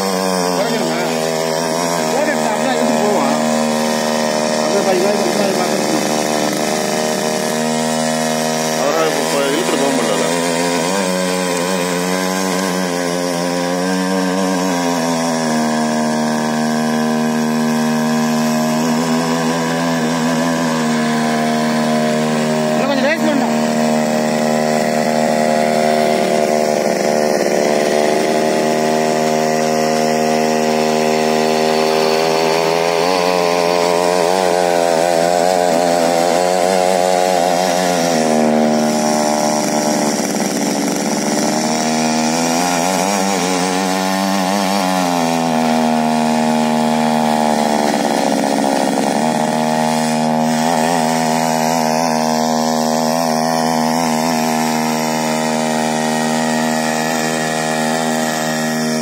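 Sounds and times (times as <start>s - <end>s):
small petrol engine running: 0.0s - 59.0s
tines churning soil: 0.0s - 59.0s.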